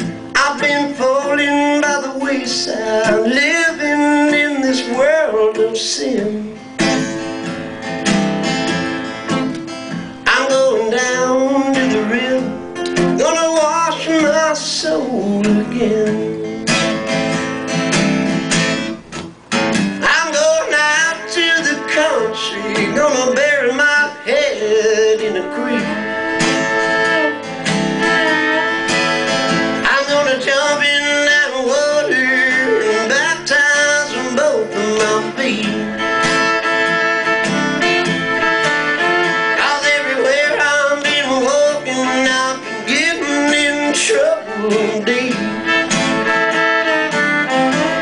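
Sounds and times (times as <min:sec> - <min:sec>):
acoustic guitar strumming: 0:00.0 - 0:48.0
sliding fiddle melody: 0:20.6 - 0:48.0.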